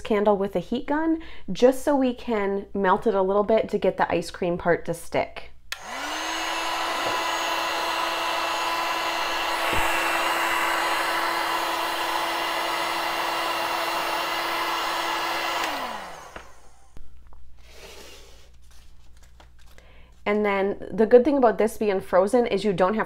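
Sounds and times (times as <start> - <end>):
fan winding down: 5.7 - 17.0
heat gun blowing air: 5.7 - 17.0
faint handling sounds: 17.0 - 20.3.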